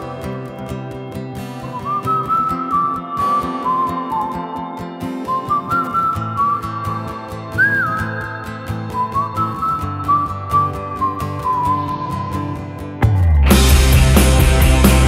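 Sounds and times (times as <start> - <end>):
high whistled melody: 0.0 - 15.0
band backing: 11.2 - 15.0.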